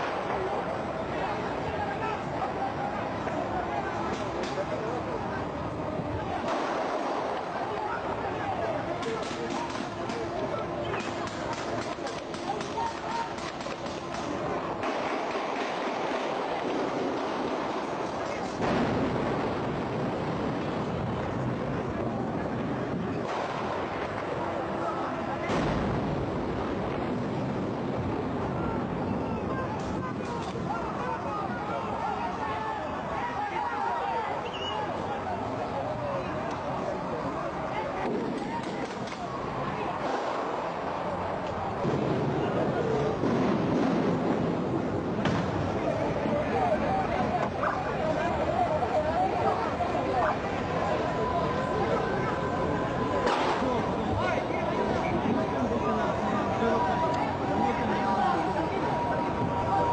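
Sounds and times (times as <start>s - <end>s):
explosion bangs: 6.4s - 7.7s, 11.0s - 24.6s, 25.2s - 31.0s, 38.0s - 46.2s, 53.1s - 55.2s
gunfire cracks: 6.5s - 7.6s, 10.9s - 17.3s, 23.2s - 24.2s, 53.2s - 53.8s.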